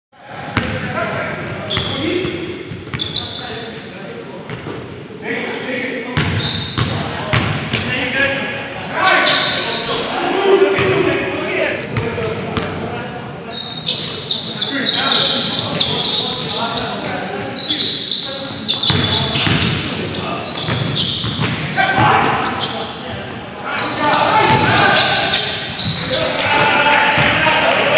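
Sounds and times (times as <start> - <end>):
sneakers squeaking: 0.6 - 10.1, 10.7 - 27.9
players calling out: 7.9 - 27.9
basketball bouncing: 18.8 - 19.8.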